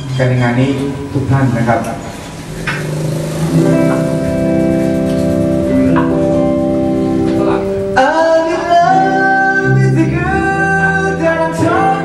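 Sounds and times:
held keyboard chord with bass: 0.0s - 12.0s.

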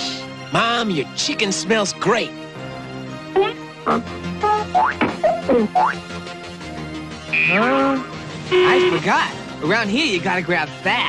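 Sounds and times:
background music: 0.0s - 11.0s
cartoon whistle tones sliding: 7.3s - 8.9s.

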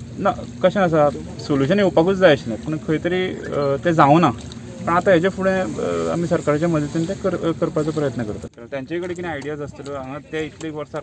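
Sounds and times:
steady hiss: 0.2s - 8.5s
man speaking: 0.2s - 11.0s.

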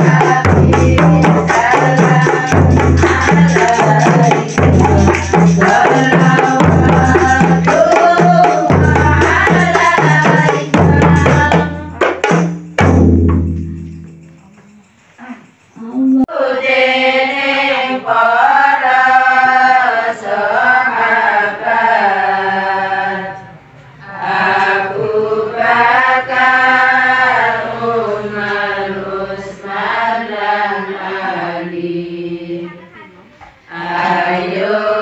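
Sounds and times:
women chanting in unison: 0.0s - 12.2s, 15.8s - 35.0s.

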